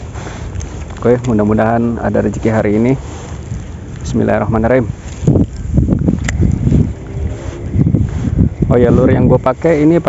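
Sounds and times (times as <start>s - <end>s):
low rumble of wind: 0.0s - 10.0s
microphone handling: 0.0s - 10.0s.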